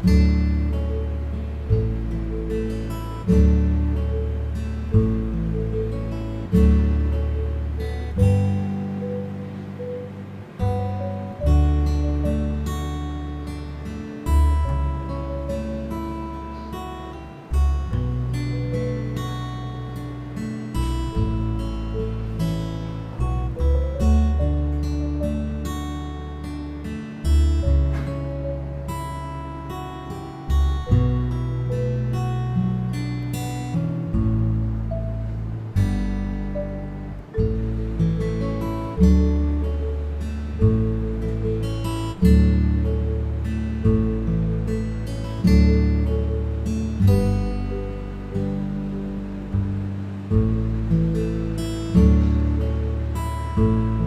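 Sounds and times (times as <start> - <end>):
acoustic guitar chords: 0.0 - 54.0
low bass notes: 0.0 - 54.0.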